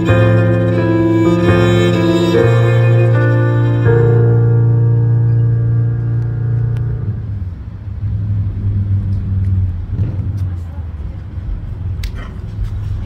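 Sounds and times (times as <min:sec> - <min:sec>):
amplified electric violin: 0:00.0 - 0:07.8
low accompaniment: 0:00.0 - 0:13.0
low traffic rumble: 0:00.0 - 0:13.0.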